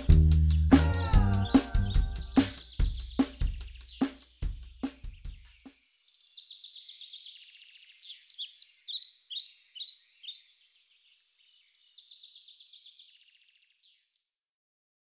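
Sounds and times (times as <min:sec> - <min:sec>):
birds chirping and trilling: 0:00.0 - 0:14.4.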